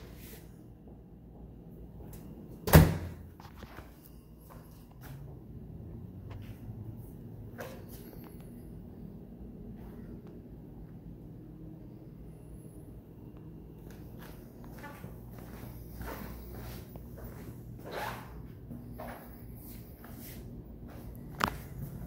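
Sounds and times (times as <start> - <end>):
faint low hum: 0.0 - 22.0
footsteps on tile floor: 13.8 - 22.0.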